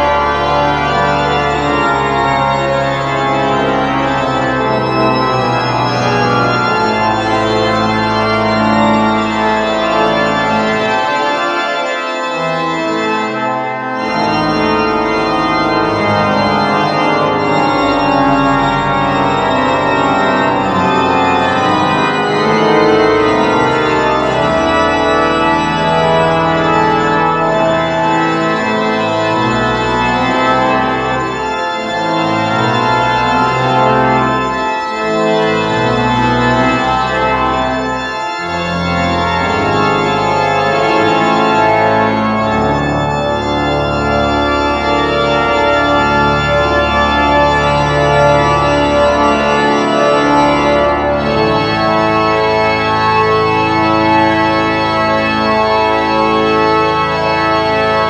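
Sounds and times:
deep organ pedal bass: 0:00.0 - 0:58.0
pipe organ chords: 0:00.0 - 0:58.0.

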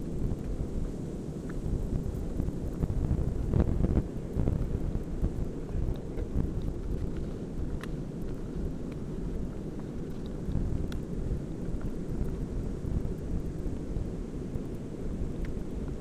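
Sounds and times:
wind buffeting microphone: 0:00.0 - 0:16.0
faint clicks: 0:05.9 - 0:09.1, 0:14.5 - 0:16.0.

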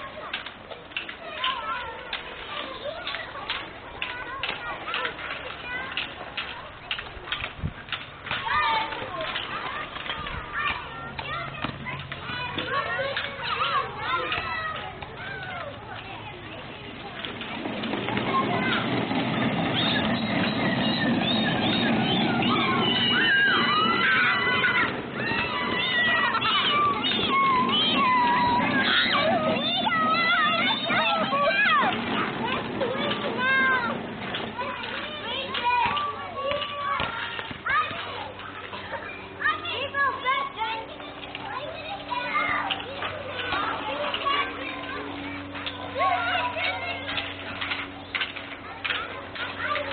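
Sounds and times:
children squealing and calling out: 0:08.3 - 0:16.4, 0:17.8 - 0:49.9.

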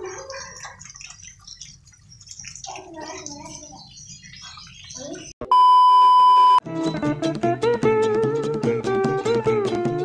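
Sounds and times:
test-tone beep: 0:05.4 - 0:06.6.

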